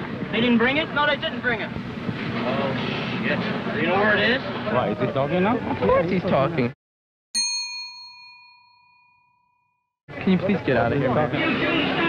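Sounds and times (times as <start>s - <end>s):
bell-like chime: 7.4s - 9.9s.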